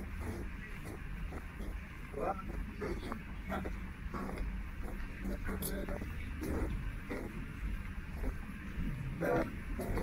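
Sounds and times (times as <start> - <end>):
indistinct voices: 0.0 - 10.0
steady low hum: 0.0 - 10.0.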